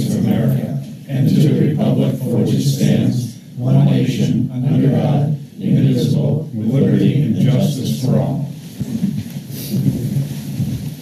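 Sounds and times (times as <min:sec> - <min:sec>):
people shuffling and sitting down: 0:00.0 - 0:11.0
office chairs rolling: 0:07.1 - 0:11.0.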